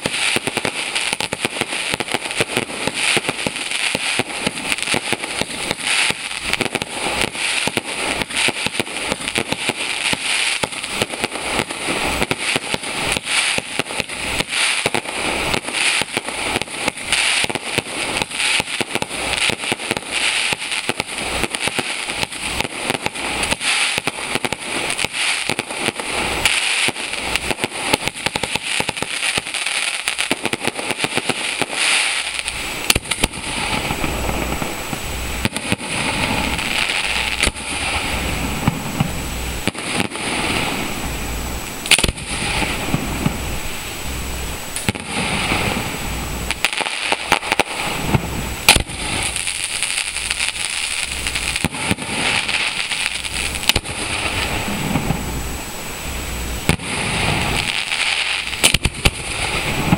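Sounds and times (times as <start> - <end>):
fireworks crackling and popping: 0.0 - 59.9.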